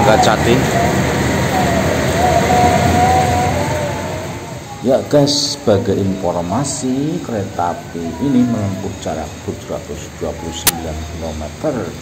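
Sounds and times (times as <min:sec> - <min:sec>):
thin wavering whine: 0:00.0 - 0:09.5
train rumbling: 0:00.0 - 0:11.6.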